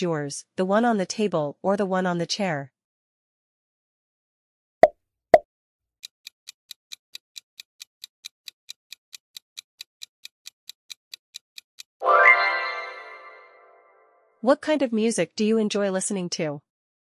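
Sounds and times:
timer ticking: 6.0s - 12.0s.

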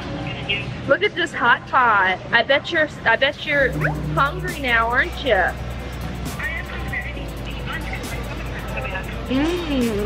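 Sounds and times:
background music: 3.2s - 10.0s
steady low hum: 3.3s - 9.0s.

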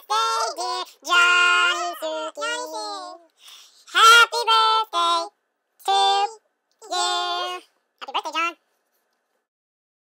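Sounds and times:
high-pitched voice singing: 0.0s - 3.3s, 3.9s - 8.6s.

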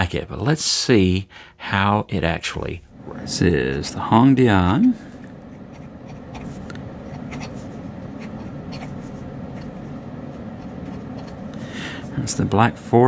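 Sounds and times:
steady low hum: 0.0s - 13.0s
pen scratching on paper: 5.4s - 11.4s.

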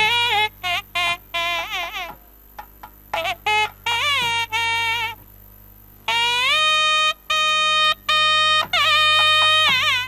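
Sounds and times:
double-reed pipe playing held notes: 0.0s - 2.2s, 3.1s - 5.2s, 6.1s - 10.0s.

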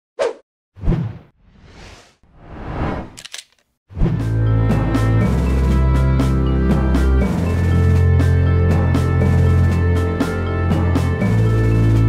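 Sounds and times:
whoosh: 0.8s - 3.2s.

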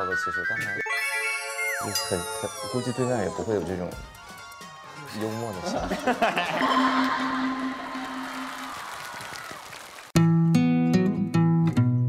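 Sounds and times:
audience applause: 6.6s - 10.2s.

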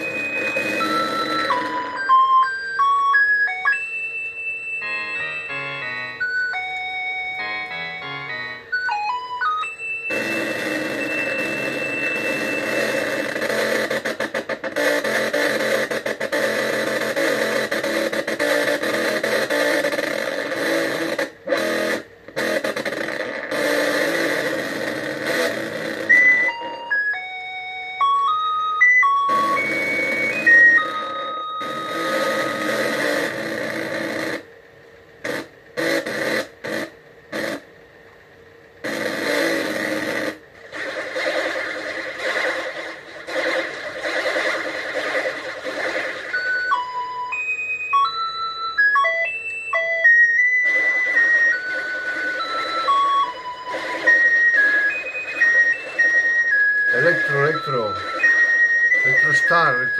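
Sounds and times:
buzzing synthesizer texture: 0.0s - 3.8s, 4.8s - 34.6s, 35.2s - 37.8s, 38.8s - 59.9s
beeping synth melody: 0.0s - 21.3s, 23.5s - 34.3s, 43.3s - 59.9s.

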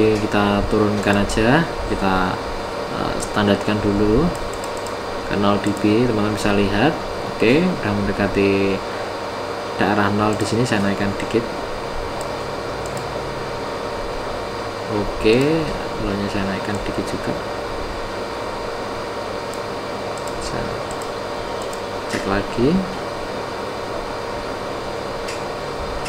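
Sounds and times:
subwoofer playing low pink noise: 0.0s - 26.0s.

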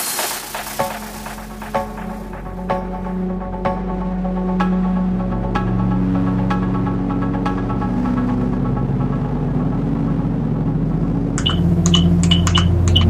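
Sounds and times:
sharp percussion hits: 0.0s - 2.8s
techno track: 0.0s - 9.7s, 11.4s - 13.0s
sustained synth chords: 0.3s - 13.0s
heavy bass: 0.4s - 13.0s.

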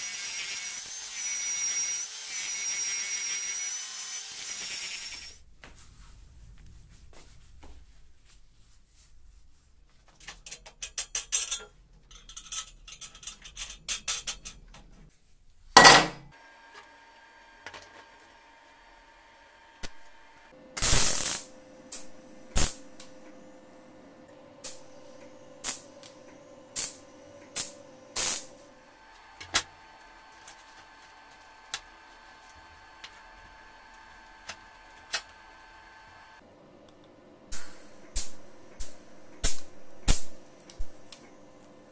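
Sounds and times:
welding machine hum: 18.7s - 36.4s
welding arc crackle: 20.8s - 23.0s, 25.6s - 26.1s, 26.8s - 28.6s.

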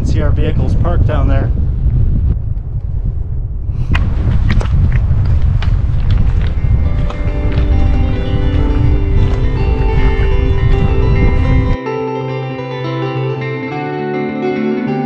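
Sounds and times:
wind buffeting microphone: 0.0s - 11.8s
guitar music: 6.3s - 15.0s.

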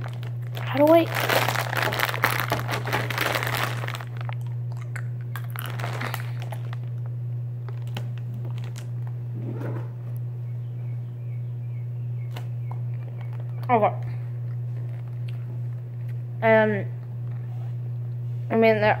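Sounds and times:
plastic bag crinkling: 0.0s - 9.2s, 14.7s - 15.4s
steady low hum: 0.0s - 19.0s.

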